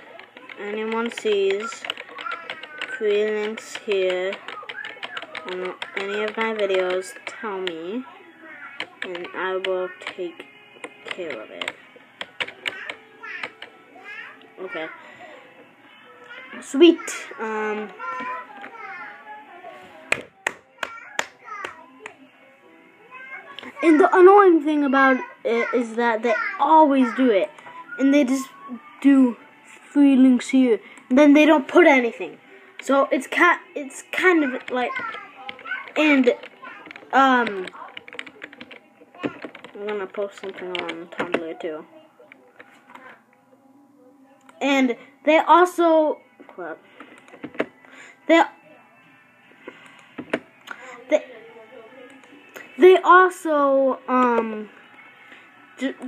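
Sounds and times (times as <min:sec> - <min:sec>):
boy speaking: 0:12.8 - 0:15.2, 0:23.2 - 0:29.4
hand claps: 0:20.4 - 0:21.8.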